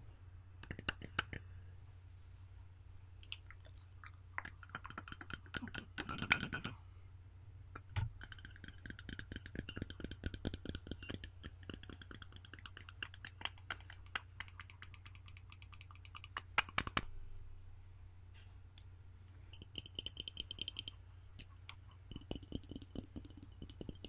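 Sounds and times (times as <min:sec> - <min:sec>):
low electrical hum: 0:00.0 - 0:24.0
fingernails tapping ceramic mug: 0:04.4 - 0:06.8, 0:07.8 - 0:17.0, 0:19.5 - 0:24.0.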